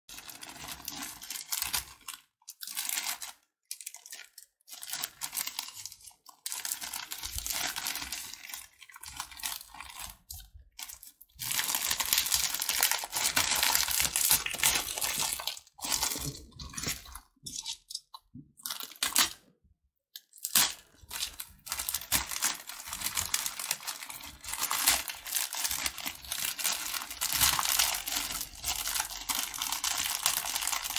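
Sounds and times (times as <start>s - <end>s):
plastic packets crinkling: 0.1s - 18.0s, 20.4s - 30.9s
crunchy sweets crunching: 0.1s - 19.5s, 20.2s - 30.9s.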